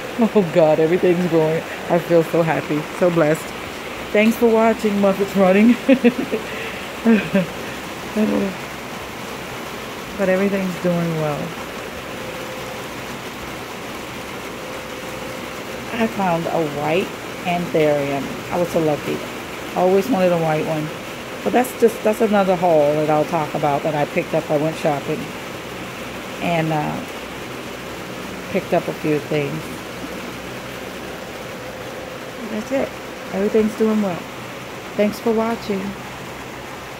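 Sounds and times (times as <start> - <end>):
steady rain hissing: 0.0 - 36.9.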